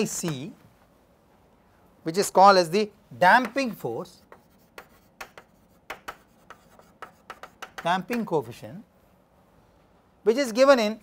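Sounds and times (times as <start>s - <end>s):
man talking: 0.0s - 0.6s, 7.8s - 8.9s, 10.2s - 11.0s
chalk writing on chalkboard: 3.4s - 8.2s.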